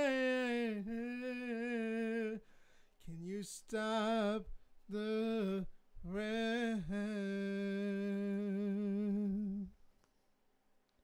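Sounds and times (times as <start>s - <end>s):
man singing long note: 0.0s - 2.4s, 3.1s - 9.7s.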